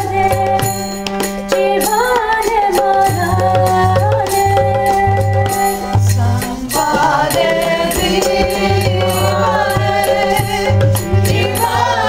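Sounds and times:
light percussion strokes: 0.0s - 12.0s
group devotional singing: 6.1s - 12.0s.

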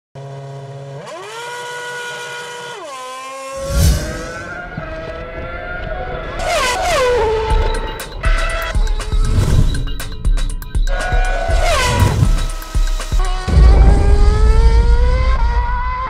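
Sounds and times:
racing car engine revving: 0.2s - 16.0s
loud rushing burst: 3.6s - 4.6s, 13.5s - 16.0s.

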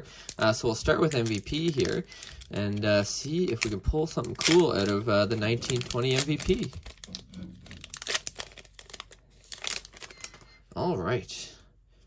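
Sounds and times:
plastic wrapper tearing and crinkling: 0.2s - 10.6s.

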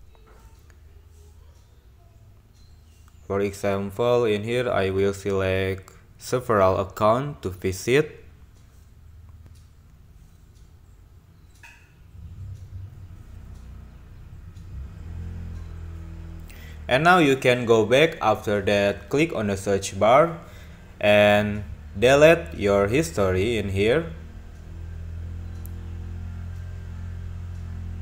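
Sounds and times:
faint steady tones: 0.0s - 28.0s
low hum and rumble: 8.2s - 28.0s.

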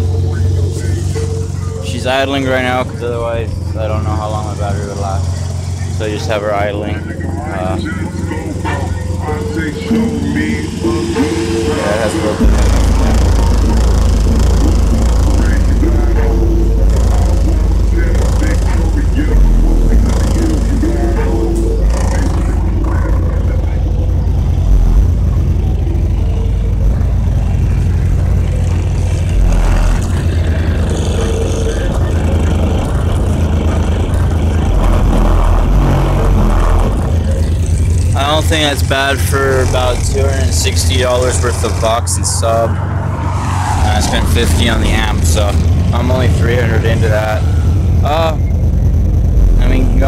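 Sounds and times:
song on car audio system: 0.0s - 42.8s
vocal line: 0.0s - 48.6s
heavy bass: 0.0s - 50.0s.

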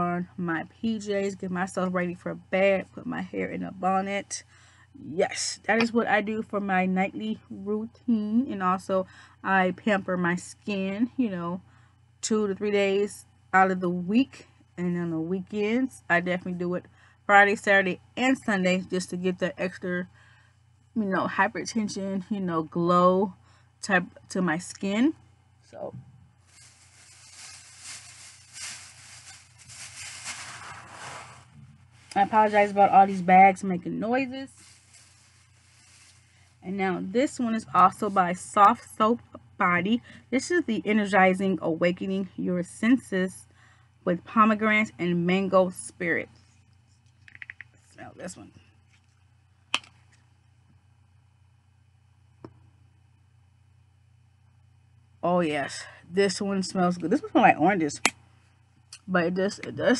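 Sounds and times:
low hum: 0.0s - 59.9s
shopping bags rustling: 26.4s - 33.2s, 34.4s - 36.6s.

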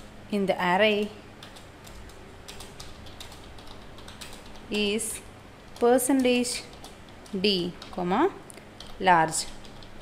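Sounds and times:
keyboard keys clicking: 1.4s - 4.8s, 8.8s - 10.0s.

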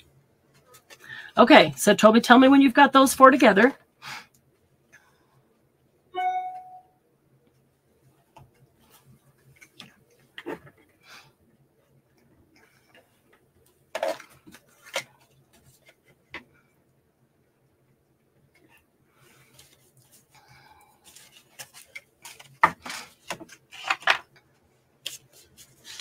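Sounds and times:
brief pitched tone: 6.2s - 7.0s.

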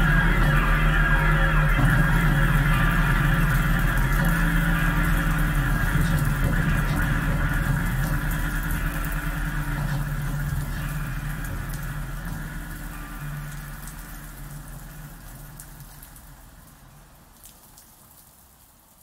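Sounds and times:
droning live jam music: 0.0s - 17.3s.

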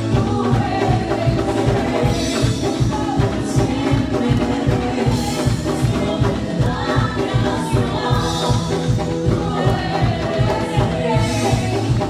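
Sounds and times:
band accompaniment: 0.0s - 12.0s
group singing worship song: 0.0s - 12.0s.

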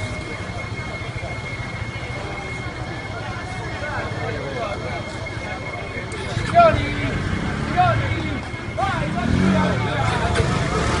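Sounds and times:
fire engine idling: 0.0s - 11.0s.

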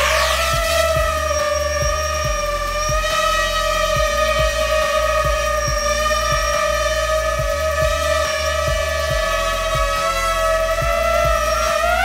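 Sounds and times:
background music with steady beat: 0.0s - 12.0s
drone propellers whining: 0.0s - 12.0s.

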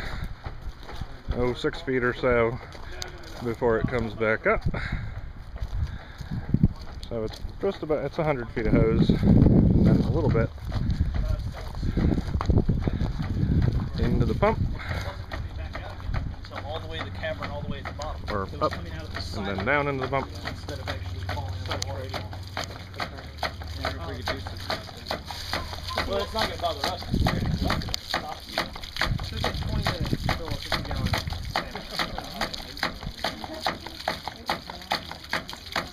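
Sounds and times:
water splashing: 0.0s - 35.9s
wind rumble on microphone: 4.6s - 7.7s, 8.4s - 16.5s, 27.0s - 28.0s, 28.9s - 31.6s
pump valve clacking shut: 17.0s - 35.9s.

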